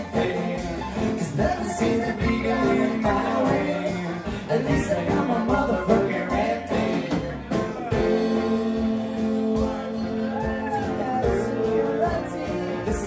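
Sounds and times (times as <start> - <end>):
live folk-rock band playing: 0.0 - 13.0
woman singing: 0.0 - 13.0.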